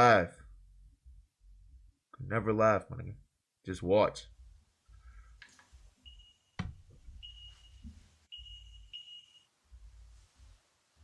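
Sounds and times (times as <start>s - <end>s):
faint high steady tone: 6.0s - 10.3s.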